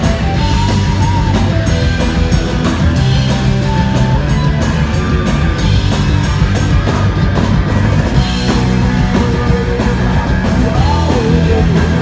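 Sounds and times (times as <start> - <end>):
bass guitar: 0.0 - 12.0
drums: 0.0 - 12.0
electric guitars: 0.0 - 12.0.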